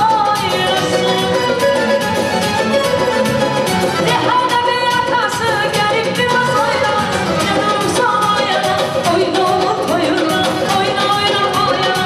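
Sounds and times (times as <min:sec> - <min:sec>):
woman singing into a microphone: 0:00.0 - 0:02.1, 0:03.9 - 0:12.0
amplified band with steady beat: 0:00.0 - 0:12.0.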